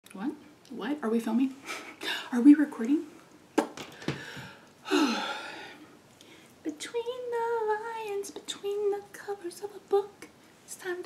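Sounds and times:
woman sighing: 0:04.2 - 0:05.8.

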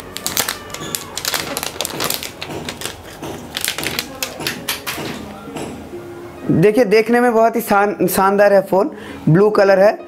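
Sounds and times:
plastic film crackling: 0:00.0 - 0:04.9.

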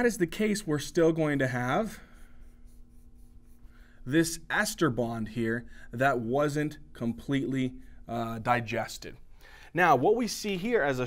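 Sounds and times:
marker drawing on whiteboard: 0:00.0 - 0:05.4
low steady hum: 0:00.0 - 0:11.0.

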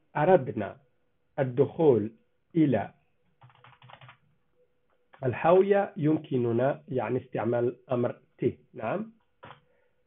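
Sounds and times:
computer keyboard typing: 0:03.4 - 0:04.2, 0:09.4 - 0:09.6.

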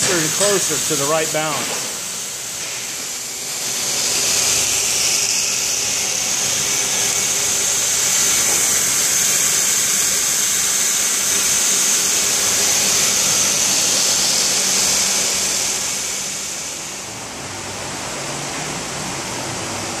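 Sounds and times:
balancing machine whirring: 0:00.0 - 0:20.0.

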